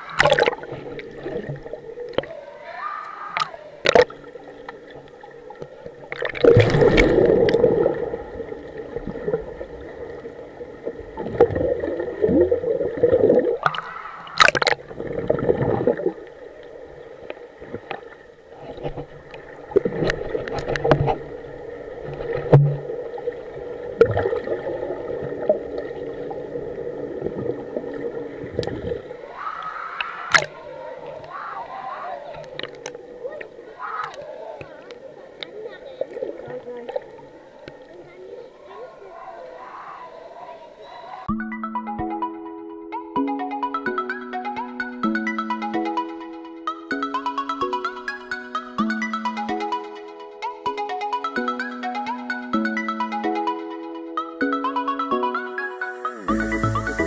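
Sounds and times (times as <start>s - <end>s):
muffled underwater gurgling: 0.0s - 41.3s
water splashing: 0.0s - 41.3s, 55.8s - 57.0s.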